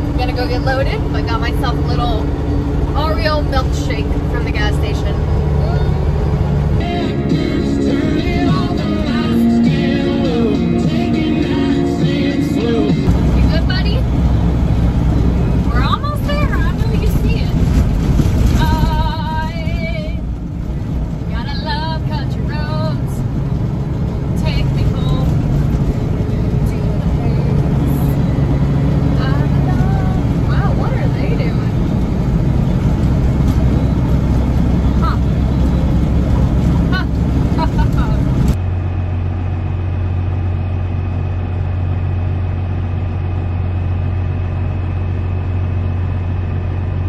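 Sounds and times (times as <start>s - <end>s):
diesel engine drone: 0.0s - 47.0s
steady low hum: 0.0s - 47.0s.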